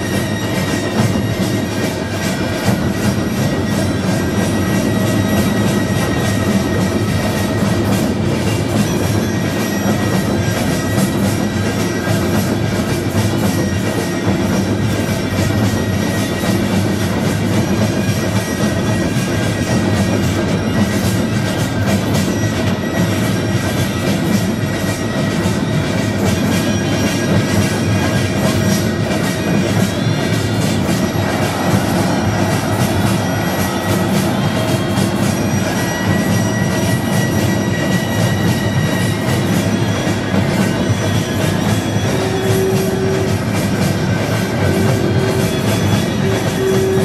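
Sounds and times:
fast drum beats: 0.0 - 47.0
gong beats: 0.0 - 47.0
high held tones: 0.0 - 47.0.

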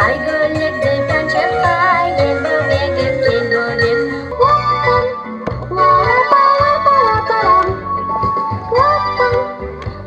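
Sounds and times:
girl singing into a microphone: 0.0 - 7.8, 8.7 - 9.6
backing track: 0.0 - 10.0.

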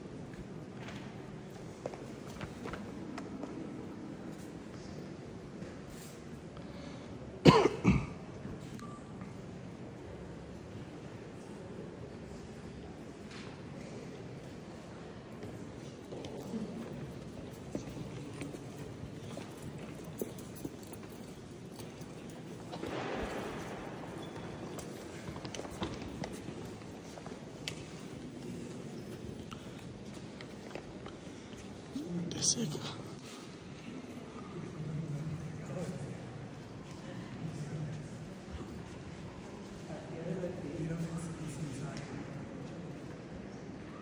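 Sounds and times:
low church interior hum: 0.0 - 44.0
person coughing: 7.4 - 8.2.

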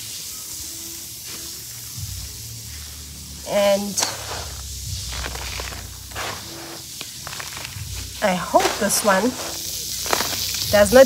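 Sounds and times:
steady hiss: 0.0 - 11.0
potting soil rustling and crunching: 3.4 - 11.0.

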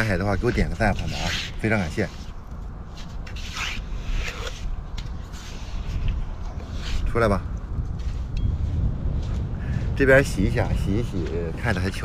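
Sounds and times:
metal trowel scraping damp sand: 0.0 - 7.4.

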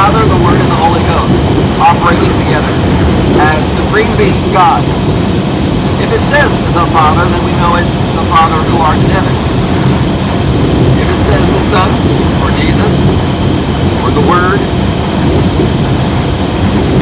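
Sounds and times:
man talking: 0.0 - 5.3, 6.0 - 9.4, 11.0 - 13.1, 14.0 - 14.7
road and engine rumble in car: 0.0 - 17.0.

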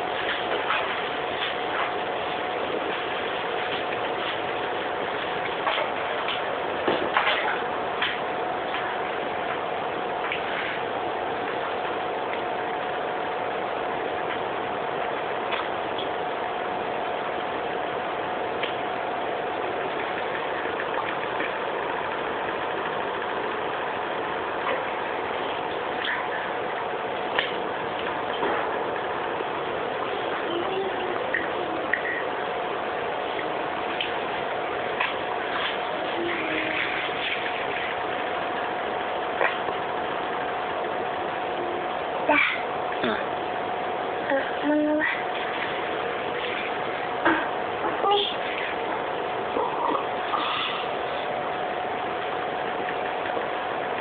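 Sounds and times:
background hum: 0.0 - 54.0.

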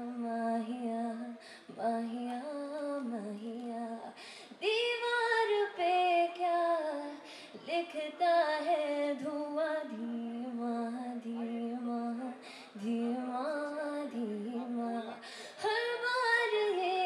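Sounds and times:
woman singing: 0.0 - 17.0
short breaths: 1.4 - 1.8, 4.2 - 4.6, 7.2 - 7.7, 12.4 - 12.8, 15.1 - 15.6.

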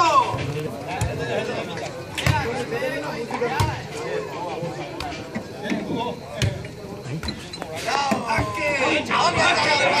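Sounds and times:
spectators shouting and talking: 0.0 - 10.0.

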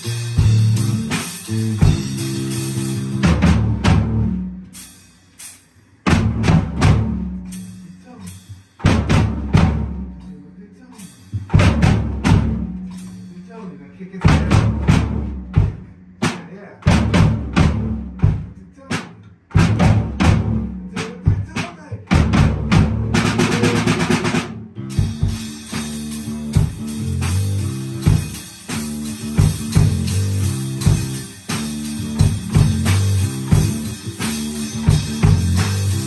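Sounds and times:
electric bass: 0.0 - 5.4, 6.0 - 18.8, 19.5 - 21.4, 22.0 - 36.0
rock drum kit: 0.0 - 36.0
fast snare roll: 27.1 - 36.0.

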